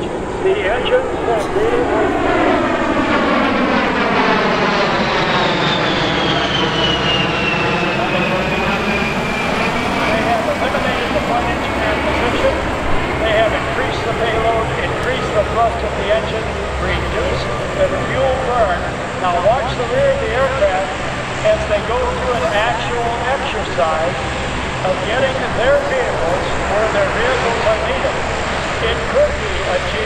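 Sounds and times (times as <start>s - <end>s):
jet passing by in flight: 0.0s - 30.0s.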